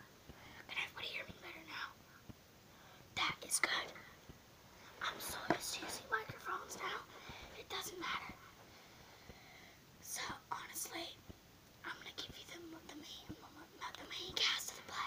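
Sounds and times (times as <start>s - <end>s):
child whispering: 0.4s - 2.0s, 3.2s - 4.2s, 4.9s - 8.6s, 10.0s - 11.2s, 11.8s - 15.0s.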